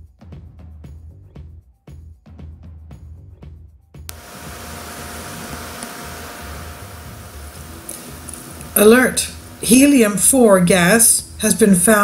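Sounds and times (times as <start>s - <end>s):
low irregular pulsing: 4.1s - 10.9s
steady hiss: 4.1s - 11.0s
click: 5.7s - 6.0s, 7.8s - 8.7s.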